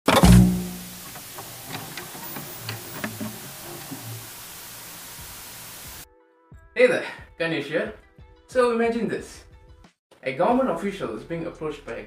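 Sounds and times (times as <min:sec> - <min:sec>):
steady hiss: 0:00.4 - 0:06.0.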